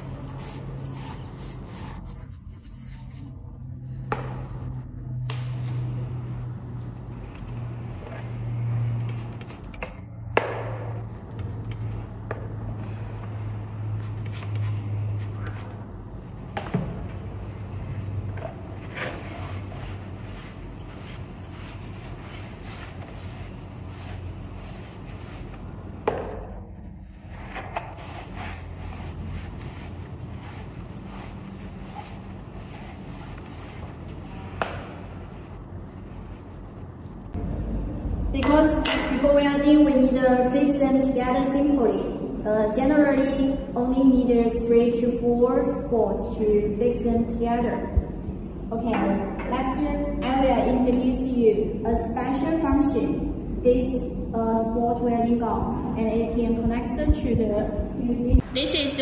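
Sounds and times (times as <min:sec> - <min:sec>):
scouring pad scraping metal pipe: 0:00.0 - 0:03.4.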